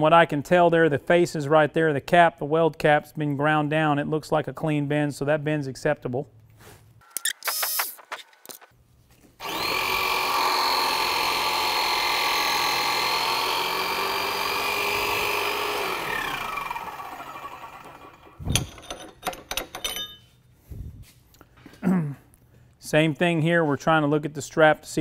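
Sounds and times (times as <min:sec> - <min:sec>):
hydraulic pump motor running: 0:09.4 - 0:19.7
metal clinks: 0:18.5 - 0:20.4.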